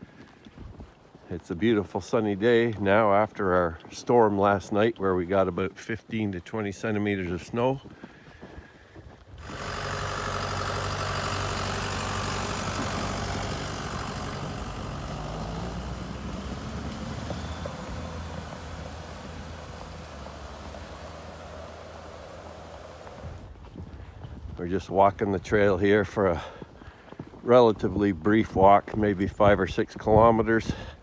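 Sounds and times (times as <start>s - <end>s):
snow groomer engine passing: 9.4s - 23.6s.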